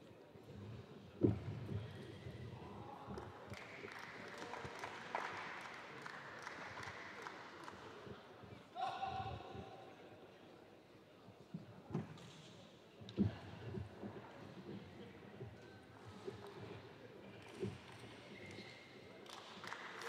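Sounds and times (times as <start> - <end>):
murmur of hall: 0.0 - 20.0.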